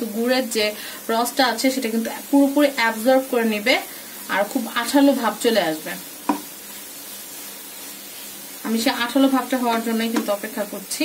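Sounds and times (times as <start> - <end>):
food sizzling in a frying pan: 0.0 - 11.0
wooden spatula scraping a pan: 2.1 - 10.8.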